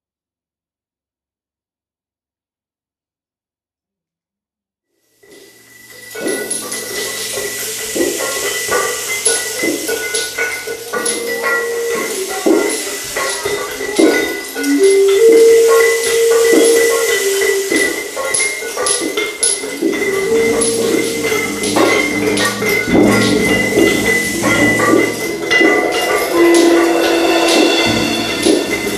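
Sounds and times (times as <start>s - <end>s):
thin steady high tone: 5.4s - 28.9s
hand percussion clicks and rattles: 5.9s - 28.9s
held notes stepping between pitches: 10.5s - 28.9s.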